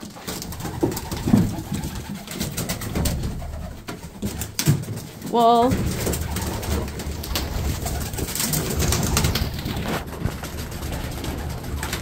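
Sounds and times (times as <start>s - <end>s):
pigeons cooing: 0.0s - 12.0s
rustling: 0.0s - 12.0s.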